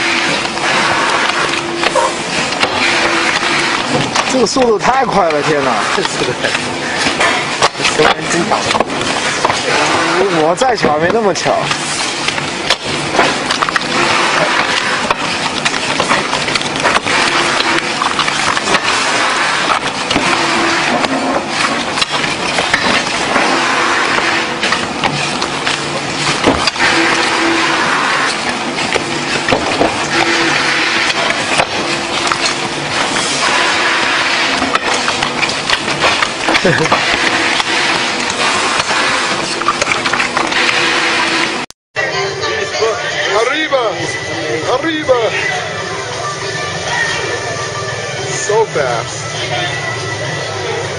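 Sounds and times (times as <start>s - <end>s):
loud workroom din: 0.0s - 50.9s
indistinct voices talking: 42.0s - 50.9s.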